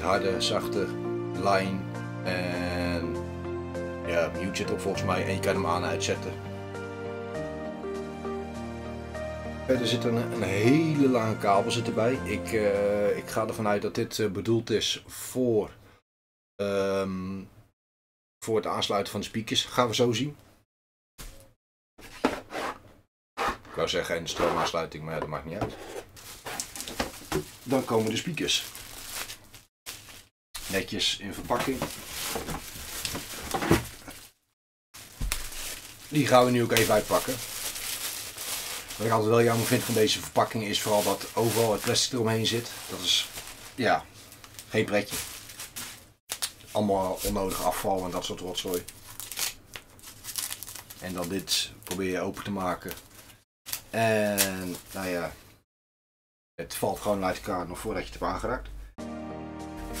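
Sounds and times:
hands rummaging in cardboard box: 26.2 - 30.2, 31.5 - 34.3, 35.0 - 43.8
plastic wrap crinkling: 26.2 - 34.4, 35.0 - 55.3.

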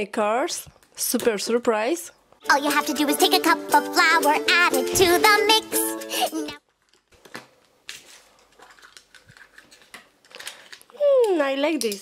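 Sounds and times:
foil wrapper crinkle: 6.6 - 11.2.

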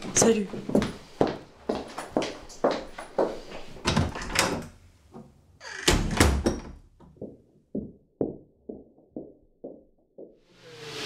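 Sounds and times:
knocks and footsteps: 0.0 - 10.5.

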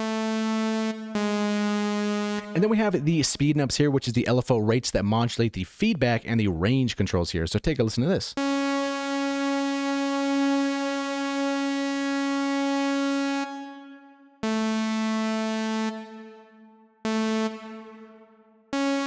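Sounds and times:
buzzy synthesizer notes with reverb: 0.0 - 3.5, 8.4 - 19.0.

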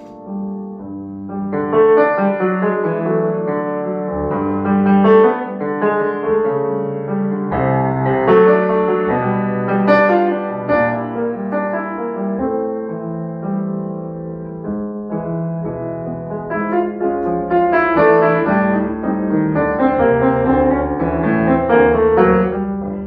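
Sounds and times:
grand piano playing: 0.0 - 23.0.

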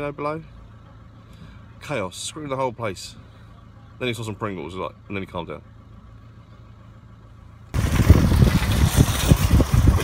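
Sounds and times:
low rumbles: 0.6 - 10.0
wind buffeting microphone: 7.8 - 10.0.

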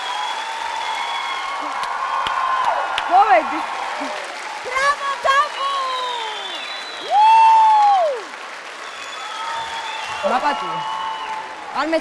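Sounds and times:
audience applauding: 0.0 - 12.0
cheering voices: 0.0 - 12.0.

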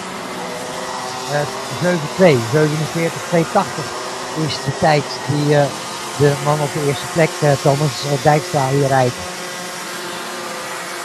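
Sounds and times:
kart engines whining: 0.0 - 11.0
commentator speaking: 1.1 - 9.3.

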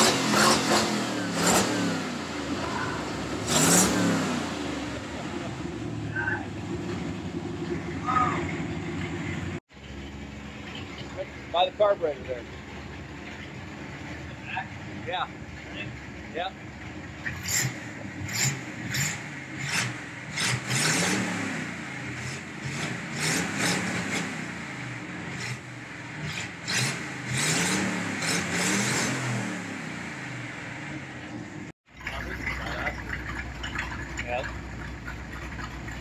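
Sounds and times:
car engine revving: 0.0 - 36.0.

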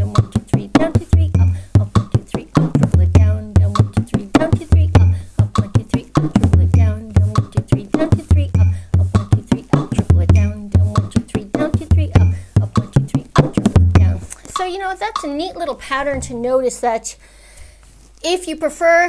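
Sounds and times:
frame drum rhythm: 0.0 - 16.5.

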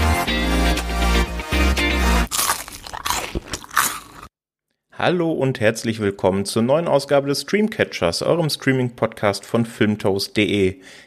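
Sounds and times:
intro music with deep bass: 0.0 - 2.3
crunching noises: 2.3 - 4.3.

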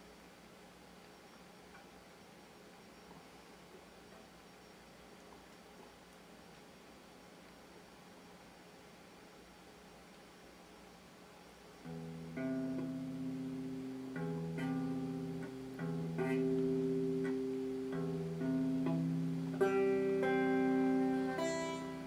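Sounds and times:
electric guitar strumming chords: 11.9 - 22.0.

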